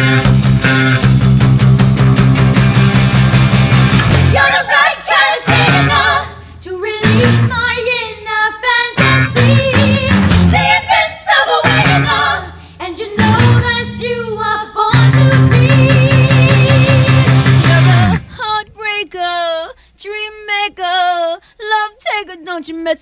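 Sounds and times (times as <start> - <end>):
rock band playing: 0.0 - 4.5, 9.0 - 10.7, 13.2 - 14.0, 15.0 - 18.3
electric bass guitar notes: 0.0 - 4.6, 5.5 - 7.8, 9.0 - 11.0, 11.6 - 18.4
woman singing: 4.3 - 23.0.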